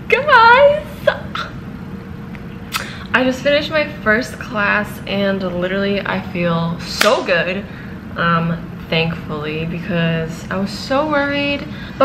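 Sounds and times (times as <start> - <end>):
steady room hum: 0.0 - 12.0.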